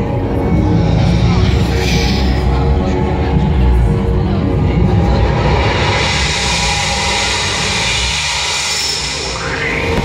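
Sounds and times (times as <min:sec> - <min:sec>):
electronic bass: 0:00.0 - 0:10.0.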